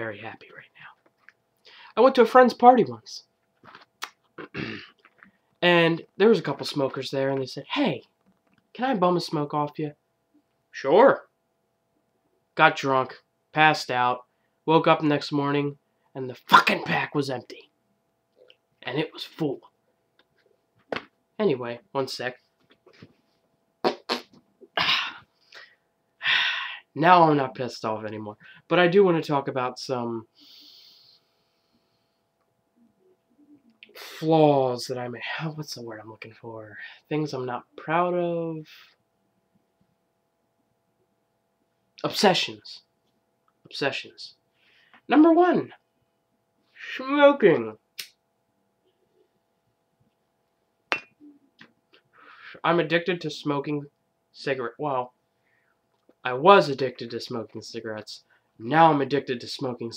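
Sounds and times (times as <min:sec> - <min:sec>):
man huffing breathy bursts: 0:24.8 - 0:26.8.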